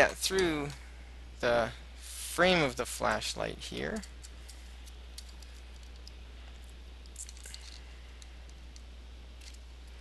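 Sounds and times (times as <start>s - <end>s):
steady low hum: 0.0s - 10.0s
foil tape clicks and crinkles: 7.0s - 7.9s.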